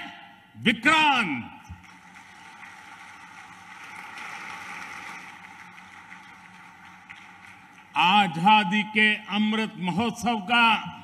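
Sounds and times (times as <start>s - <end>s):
large audience applauding: 1.8s - 8.8s.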